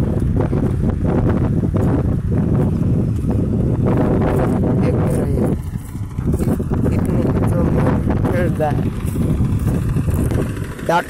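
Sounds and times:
tractor diesel engine chugging: 5.3 - 11.0.

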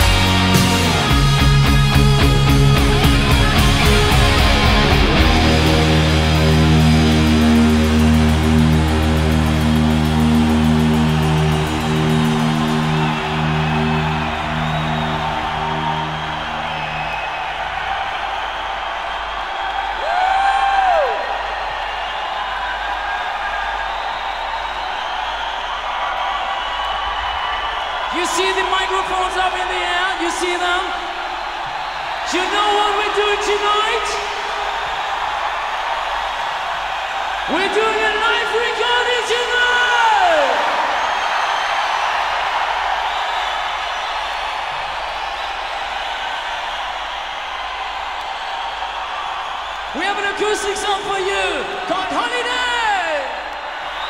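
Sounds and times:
crowd cheering: 0.0 - 54.0.

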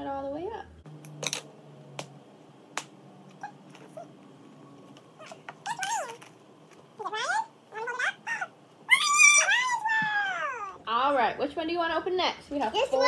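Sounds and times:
child squealing: 5.2 - 6.3, 7.0 - 10.8.

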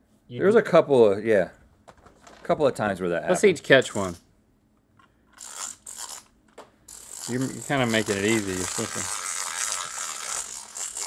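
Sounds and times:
toy fishing reels rattling whirr: 3.8 - 4.2, 5.3 - 6.3, 6.9 - 11.0.

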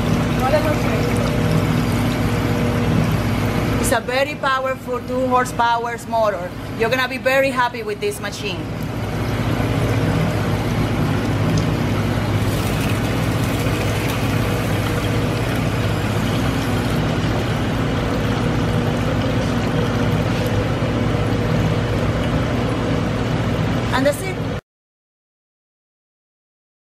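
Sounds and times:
juicer motor humming: 0.0 - 24.6.

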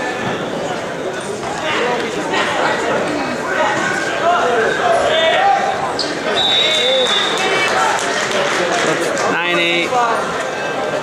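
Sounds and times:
people calling out and talking: 0.0 - 11.0
high whistle-like tone: 6.3 - 7.5.

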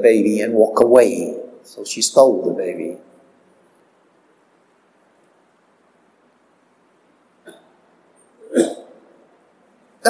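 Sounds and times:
mouth click: 7.4 - 7.7
man's sharp throat sound: 8.4 - 9.1.

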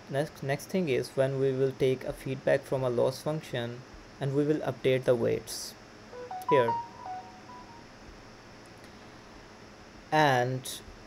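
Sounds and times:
faint electronic beeps: 6.2 - 7.8.

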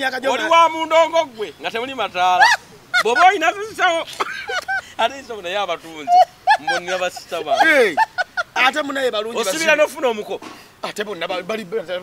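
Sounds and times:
men exclaiming and laughing: 0.0 - 12.0.

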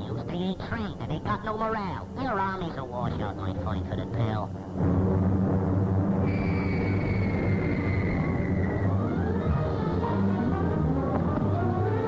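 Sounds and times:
aircraft engines droning: 0.0 - 12.0
falling bomb whistle: 6.2 - 9.8.

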